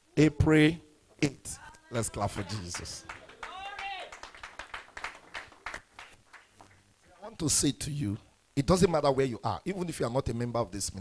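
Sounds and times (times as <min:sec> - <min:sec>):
congregation clapping: 0:02.0 - 0:07.3.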